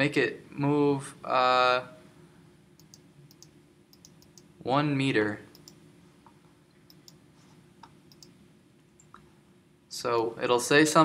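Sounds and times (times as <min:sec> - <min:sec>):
low steady hum: 0:00.0 - 0:11.0
computer mouse clicks: 0:02.8 - 0:04.5, 0:05.5 - 0:05.8, 0:06.9 - 0:07.2, 0:07.8 - 0:08.4.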